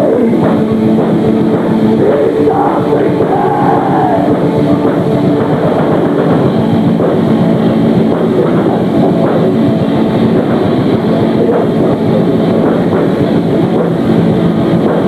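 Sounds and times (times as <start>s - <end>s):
distorted guitars: 0.0s - 15.0s
fast drumming: 0.0s - 15.0s.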